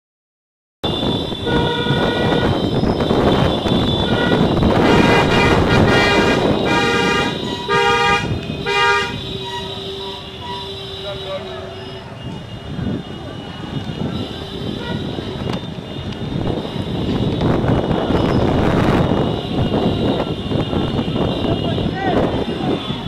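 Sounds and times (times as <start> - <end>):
slow road traffic: 0.8 - 23.0
vehicle horns honking: 0.8 - 23.0.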